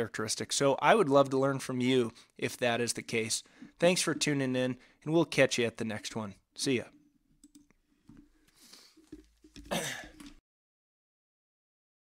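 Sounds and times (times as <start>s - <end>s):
computer mouse clicks: 7.4s - 7.8s
man clearing his throat: 9.6s - 10.3s.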